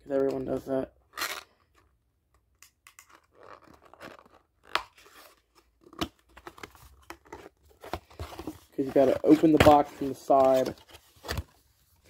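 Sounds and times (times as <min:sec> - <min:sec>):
cardboard box crinkling and scraping: 0:06.4 - 0:11.7.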